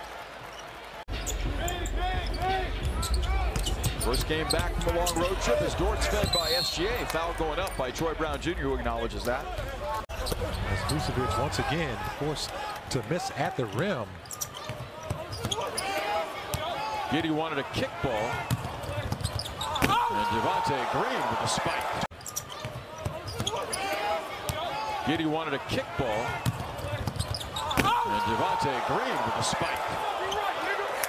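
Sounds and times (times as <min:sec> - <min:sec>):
arena noise: 0:00.0 - 0:31.0.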